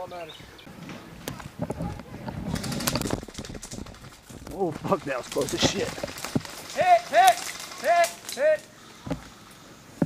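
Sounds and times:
leaves and branches rustling: 0.0s - 10.0s
footsteps on dirt trail: 1.4s - 8.2s.

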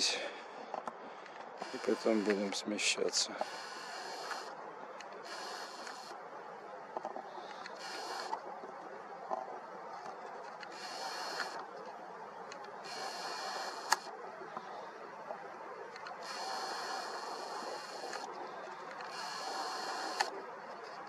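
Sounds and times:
steady background hum: 0.0s - 21.0s
camera lens motor whirring: 1.6s - 2.4s, 3.4s - 4.6s, 5.2s - 6.2s, 7.6s - 8.4s, 10.6s - 11.6s, 12.8s - 14.1s, 16.0s - 18.3s, 19.0s - 20.4s.

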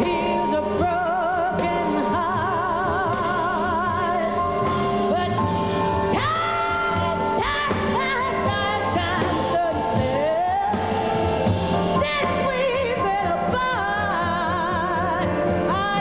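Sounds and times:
piano bass and drums trio: 0.0s - 16.0s
woman singing jazz: 0.0s - 16.0s.

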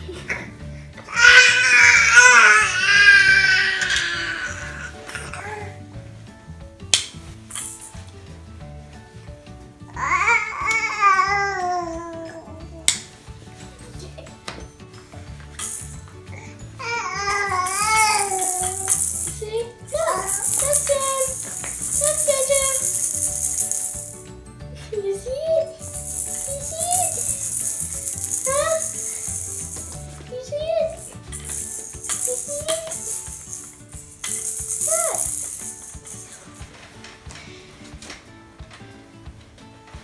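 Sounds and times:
baby babbling: 1.1s - 5.7s, 16.4s - 19.3s
plastic toy rattle shaken: 7.4s - 8.1s, 15.6s - 16.1s, 17.3s - 24.3s, 25.6s - 36.7s.

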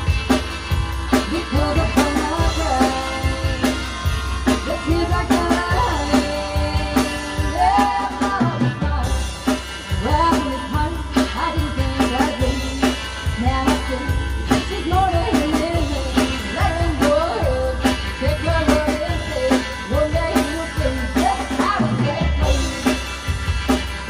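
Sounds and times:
drum kit: 0.0s - 24.0s
electric guitar: 0.0s - 24.0s
woman singing: 1.1s - 23.1s.

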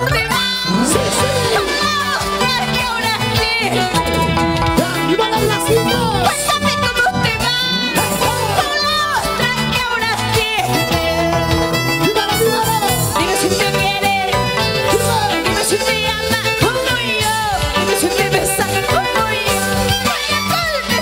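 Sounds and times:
electric bass: 0.0s - 21.0s.

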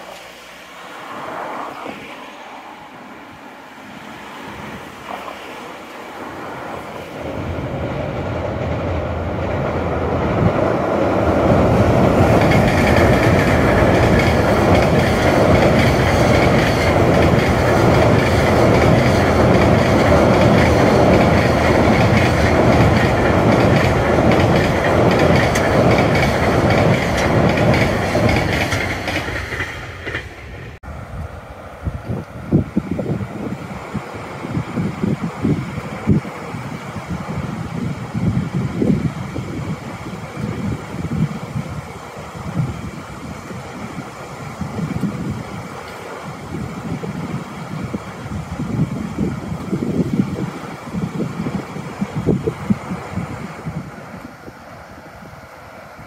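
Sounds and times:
freight train crossing steel bridge: 0.0s - 56.0s.

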